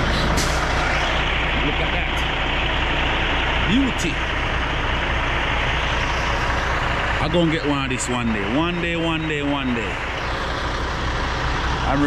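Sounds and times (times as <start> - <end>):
diesel truck engine running: 0.0 - 12.0.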